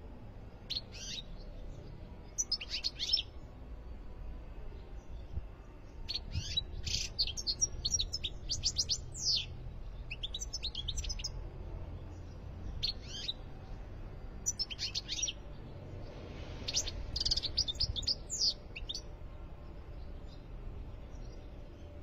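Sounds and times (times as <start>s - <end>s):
goldfinch twittering song: 2.3s - 3.3s, 6.1s - 11.4s, 12.1s - 13.4s, 14.4s - 15.4s, 16.5s - 19.1s.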